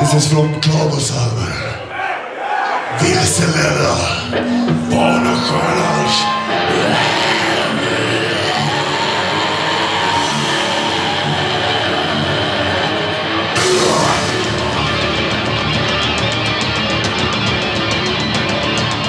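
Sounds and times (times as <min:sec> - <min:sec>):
heavy metal band playing live: 0:03.1 - 0:19.0.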